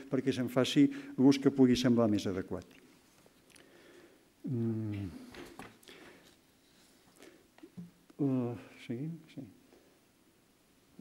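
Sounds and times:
man's hesitation sound: 4.4s - 5.6s.

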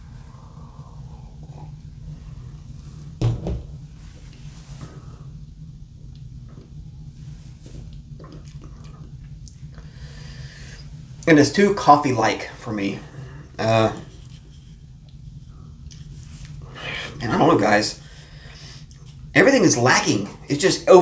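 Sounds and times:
low hum: 0.0s - 21.0s
dull knock: 3.2s - 3.7s.

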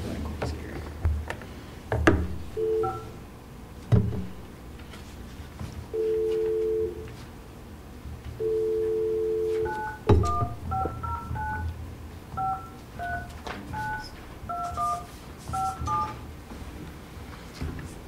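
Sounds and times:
touch-tone keypad beeps: 2.6s - 3.1s, 9.7s - 11.7s, 12.4s - 16.2s
two-note dial tone: 2.6s - 3.1s, 6.0s - 7.1s, 8.4s - 11.7s.

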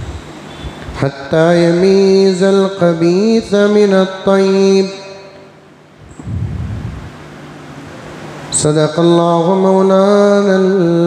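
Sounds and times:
chanted recitation echo: 1.0s - 5.6s, 8.5s - 11.0s
breath rumble on microphone: 6.1s - 7.2s.

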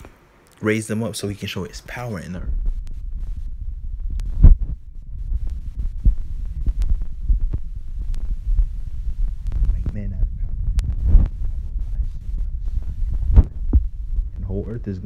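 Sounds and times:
low rumble: 1.8s - 15.0s
irregular thumps: 2.4s - 15.0s.

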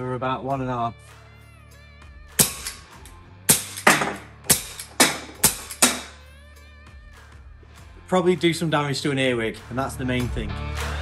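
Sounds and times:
background music: 0.0s - 11.0s
salt gun sharp cracks: 2.4s - 6.2s.

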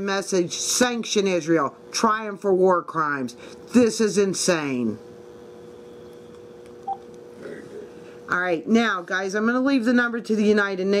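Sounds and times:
two-note telephone tone: 6.8s - 7.0s.

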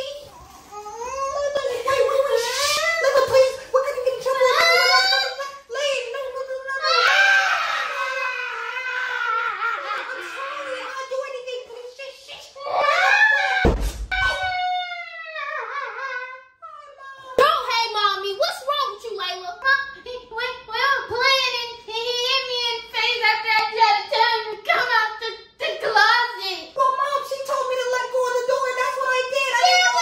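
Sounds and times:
girl wailing: 12.6s - 16.4s.

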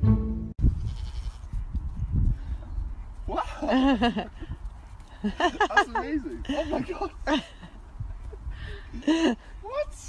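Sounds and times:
music: 0.0s - 0.6s
goat bleating: 0.8s - 1.5s.

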